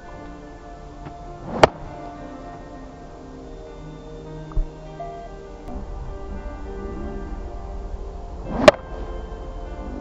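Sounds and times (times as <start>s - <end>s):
background music: 0.0s - 10.0s
club striking ball crack: 1.0s - 2.0s, 8.5s - 9.0s
golf club swishing: 1.4s - 1.9s.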